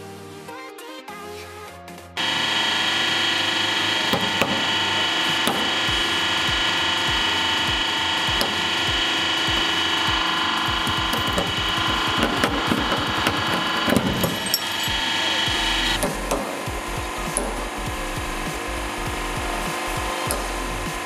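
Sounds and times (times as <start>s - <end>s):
hydraulic press hum: 2.2s - 21.0s.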